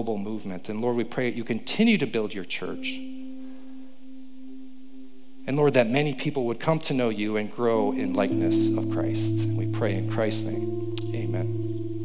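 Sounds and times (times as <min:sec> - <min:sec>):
keyboard steady low note: 0:02.1 - 0:12.0.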